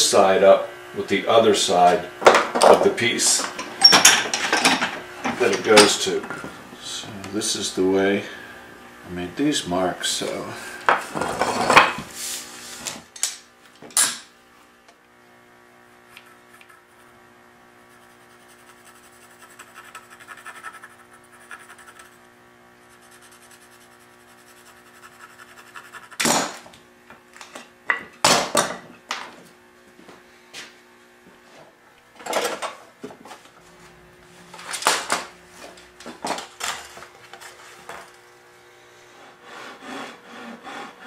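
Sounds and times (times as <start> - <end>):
tools clattering: 3.4 - 6.4
pencil scratching wood: 16.1 - 17.2, 17.9 - 22.3, 22.9 - 26.3, 39.1 - 41.0.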